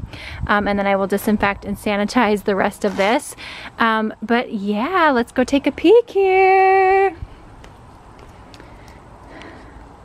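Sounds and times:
faint steady background noise: 0:00.0 - 0:10.0
footsteps in sandals on concrete: 0:02.6 - 0:03.4, 0:07.5 - 0:10.0.

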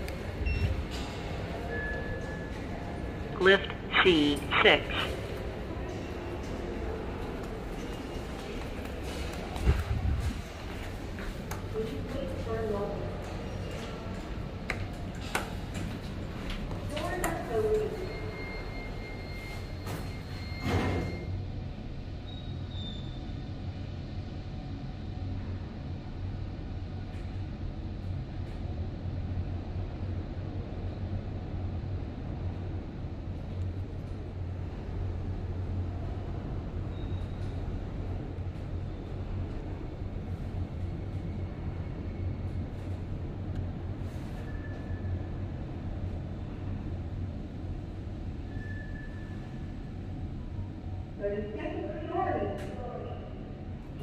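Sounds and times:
elevator low hum: 0:00.0 - 0:54.0
voices: 0:02.8 - 0:09.8.

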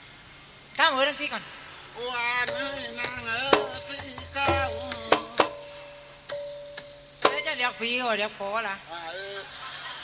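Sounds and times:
hand cymbals ringing: 0:02.5 - 0:08.2.

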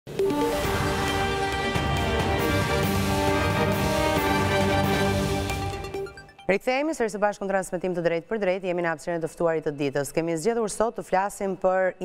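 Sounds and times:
synthesized news theme music: 0:00.1 - 0:06.9.

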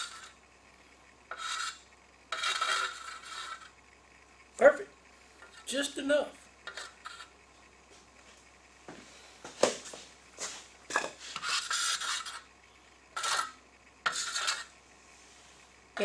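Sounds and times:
metal knife scraping epoxy: 0:00.0 - 0:00.4, 0:01.3 - 0:03.8, 0:06.6 - 0:07.4, 0:11.4 - 0:12.5, 0:13.2 - 0:14.7.

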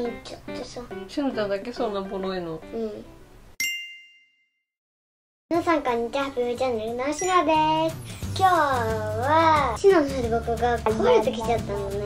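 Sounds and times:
bright bell ding: 0:03.6 - 0:04.5.

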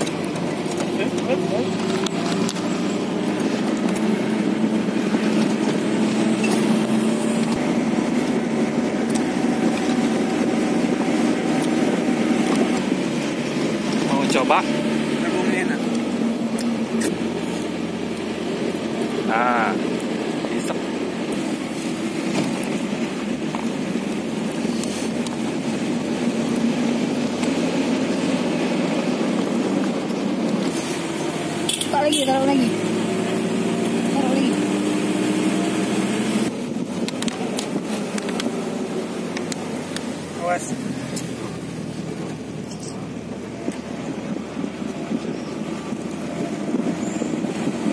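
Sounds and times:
moving truck road and engine noise: 0:00.0 - 0:47.9.

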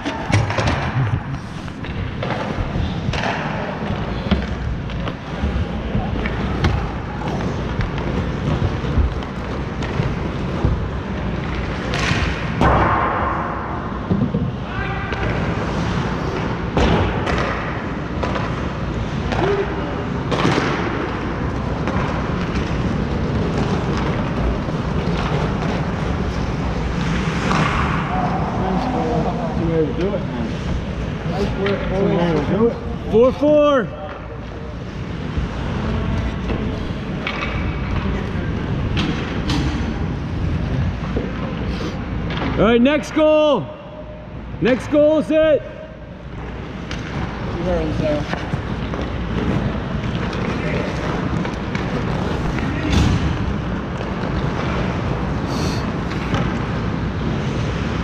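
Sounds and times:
hockey sticks and puck knocking: 0:20.2 - 0:28.2.

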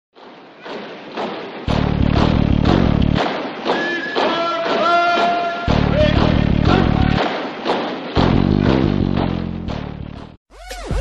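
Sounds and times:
loud low rumble: 0:01.7 - 0:03.2, 0:05.7 - 0:07.2.

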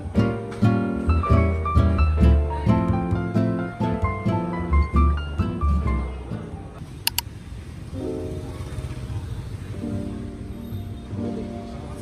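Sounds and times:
background music: 0:00.0 - 0:06.8
quick clicks: 0:07.1 - 0:07.3.

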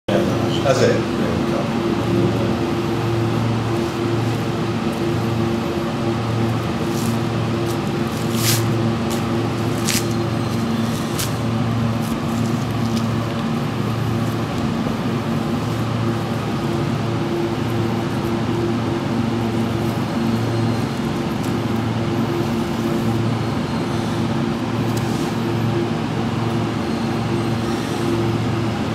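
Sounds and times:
steady machine hum: 0:00.1 - 0:28.9
knife cutting through meat: 0:06.7 - 0:11.4.

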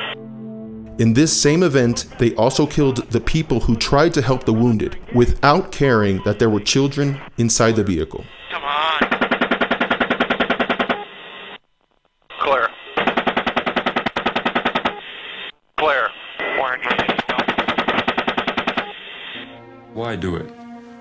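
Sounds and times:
crew radio talk: 0:01.2 - 0:11.6, 0:12.2 - 0:19.4
helicopter chain gun firing bursts: 0:09.0 - 0:11.0, 0:13.0 - 0:15.0, 0:17.0 - 0:18.9.

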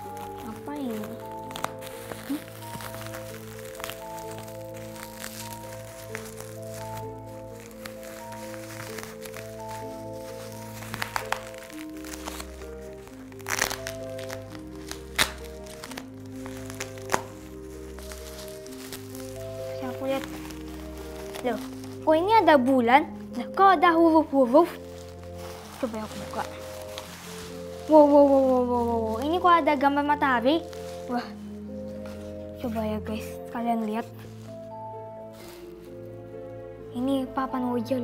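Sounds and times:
bubble wrap and tape crinkling: 0:00.0 - 0:38.0
slow background music: 0:00.0 - 0:38.0.

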